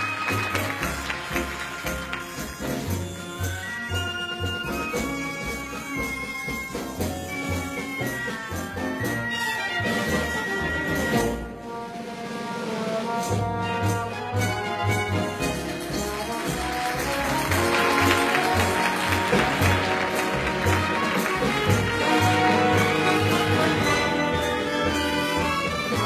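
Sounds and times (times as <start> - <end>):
brass band playing: 0.0 - 26.0.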